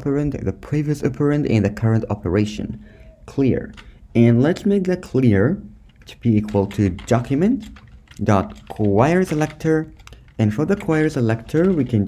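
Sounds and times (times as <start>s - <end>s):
computer keyboard typing: 5.8s - 12.0s.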